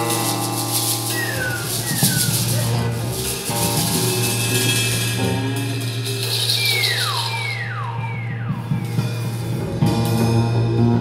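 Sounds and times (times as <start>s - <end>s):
theremin swooping down: 1.1s - 9.7s.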